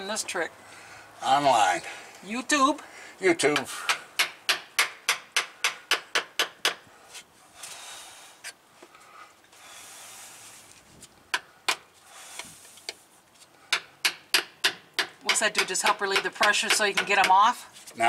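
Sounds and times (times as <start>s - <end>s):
screwdriver tapping metal: 14.0s - 17.4s.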